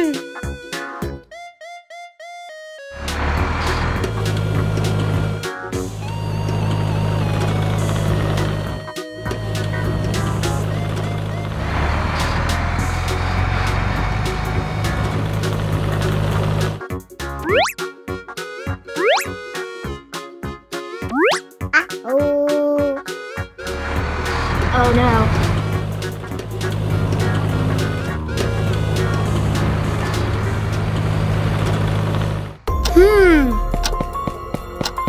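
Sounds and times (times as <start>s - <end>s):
children's background music: 0.0s - 15.6s, 16.8s - 31.0s
cartoon engine hum: 3.0s - 16.8s, 17.4s - 17.8s, 18.9s - 19.4s, 21.1s - 21.9s, 23.6s - 33.5s
rising boing-like sliding tones: 17.4s - 17.8s, 19.0s - 19.3s, 21.1s - 21.4s.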